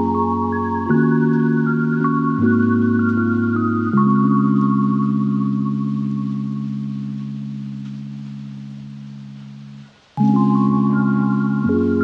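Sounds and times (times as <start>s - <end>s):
held synthesizer chord: 0.0s - 12.0s.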